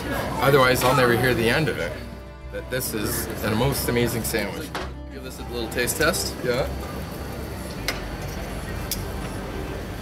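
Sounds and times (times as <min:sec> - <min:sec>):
outdoor background noise: 0:06.4 - 0:10.0.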